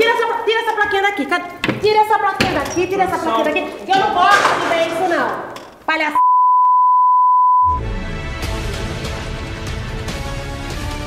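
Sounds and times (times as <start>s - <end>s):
steady test tone beep: 6.2s - 7.8s
music: 7.7s - 11.0s.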